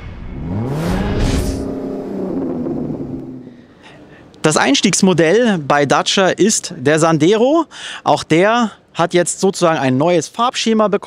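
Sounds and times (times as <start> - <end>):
car engine revving: 0.0 - 3.7
whoosh: 0.0 - 3.7.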